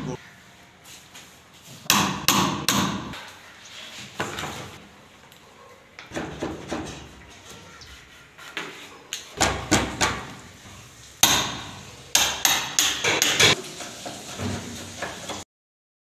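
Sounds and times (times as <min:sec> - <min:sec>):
hammer striking wood: 0:01.9 - 0:03.2, 0:09.4 - 0:10.3, 0:11.2 - 0:13.5.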